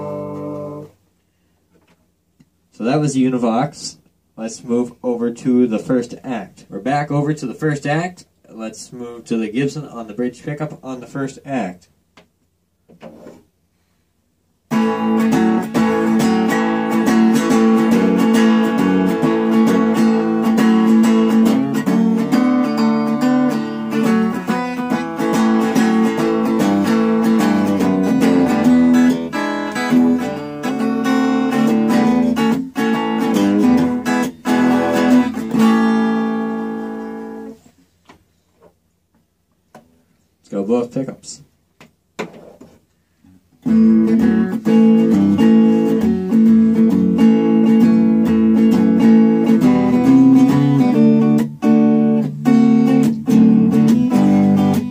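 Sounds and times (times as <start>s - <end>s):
electric guitar riffs and chords: 0.0s - 1.0s, 14.7s - 37.6s, 43.6s - 54.9s.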